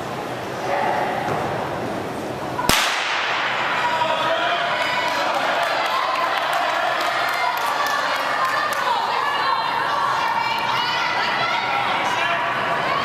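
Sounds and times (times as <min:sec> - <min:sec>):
starter's pistol crack: 0:02.7 - 0:03.4
spectators shouting and cheering: 0:03.5 - 0:13.0.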